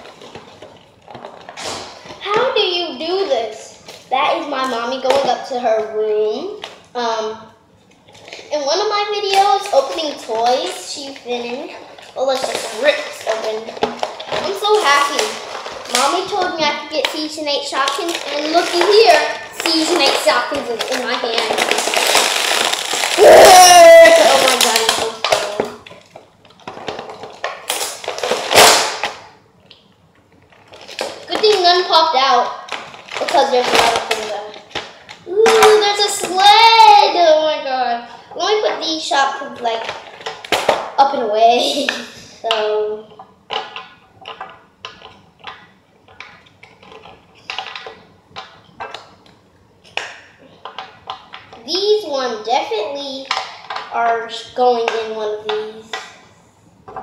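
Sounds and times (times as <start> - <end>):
plastic packaging crinkling: 0.0 - 4.2, 7.8 - 37.3, 38.1 - 41.0, 43.3 - 51.6, 52.7 - 56.3
girl talking and exclaiming: 2.2 - 7.5, 8.5 - 22.1, 23.1 - 25.8, 31.3 - 39.9, 41.0 - 43.1, 51.6 - 56.0.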